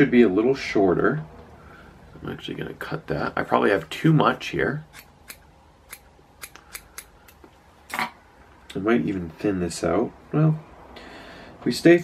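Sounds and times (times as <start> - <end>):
scissors snipping hair: 4.9 - 8.0.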